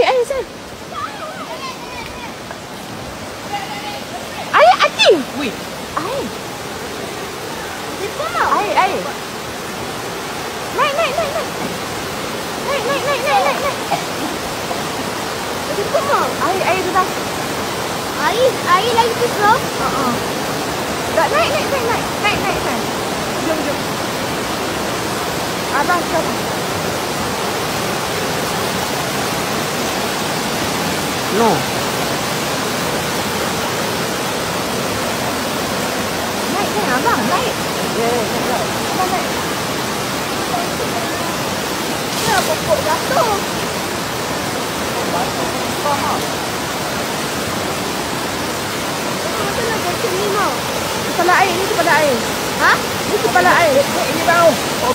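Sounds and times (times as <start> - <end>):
turbulent stream rushing: 0.0 - 54.9
voices calling out: 0.0 - 54.9.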